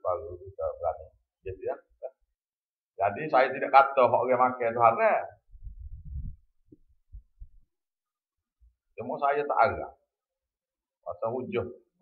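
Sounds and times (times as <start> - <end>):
muffled low thuds: 5.5 - 7.6.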